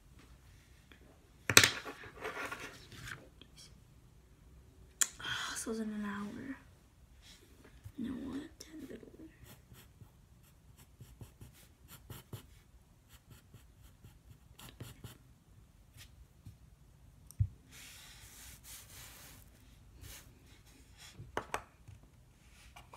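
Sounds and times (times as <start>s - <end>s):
pencil scratching on paper: 9.4s - 15.2s.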